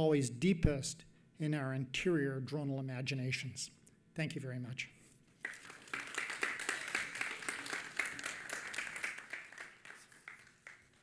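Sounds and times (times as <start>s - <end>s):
audience applauding: 5.4s - 11.0s.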